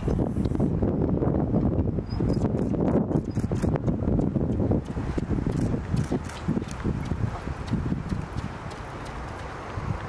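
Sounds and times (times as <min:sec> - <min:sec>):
horse hoofbeats on sand: 0:02.6 - 0:10.0.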